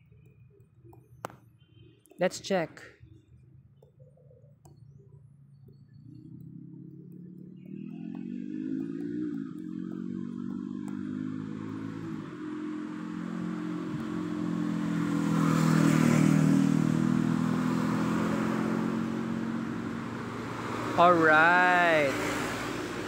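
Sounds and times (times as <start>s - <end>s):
vehicle engine running: 4.6s - 23.0s.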